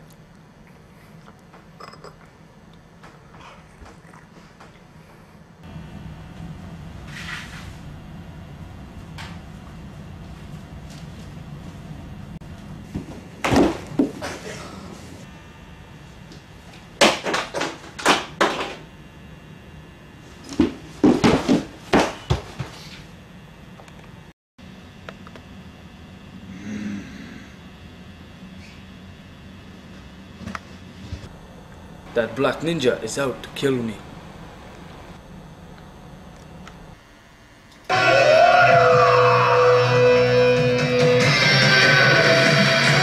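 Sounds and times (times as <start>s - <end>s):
low hum: 0.0s - 17.0s, 23.1s - 43.0s
electric guitar rock music: 37.9s - 43.0s.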